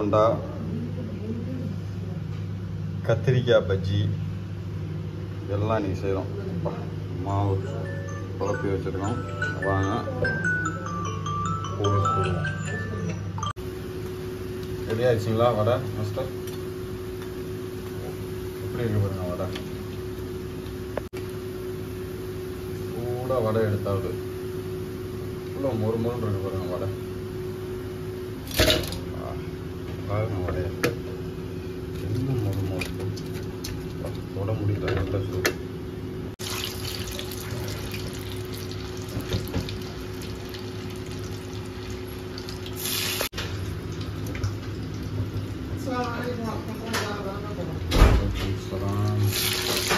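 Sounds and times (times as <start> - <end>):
food sizzling in hot oil: 36.4 - 45.2, 49.2 - 49.9.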